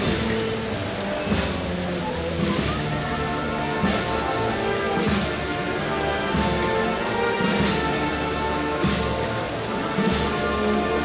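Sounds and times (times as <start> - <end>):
procession band playing a march: 0.0 - 11.0
regular drum beat: 0.0 - 11.0.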